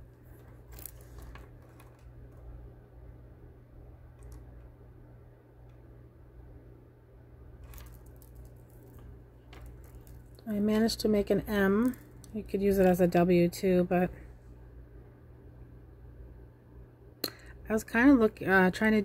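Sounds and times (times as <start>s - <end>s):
wire rings clicking and rustling: 0.0s - 2.5s, 7.6s - 13.1s
steady low hum: 0.0s - 19.0s
woman speaking: 10.4s - 14.2s, 17.7s - 19.0s.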